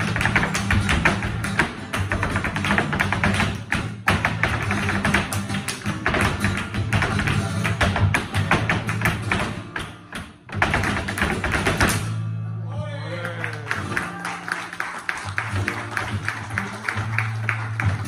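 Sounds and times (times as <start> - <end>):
flamenco guitar: 0.0 - 18.0.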